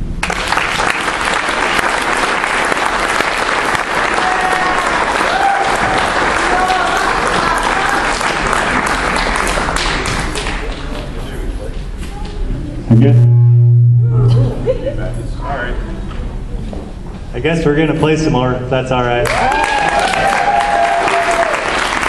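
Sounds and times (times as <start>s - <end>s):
audience applauding: 0.2s - 11.2s, 19.2s - 22.0s.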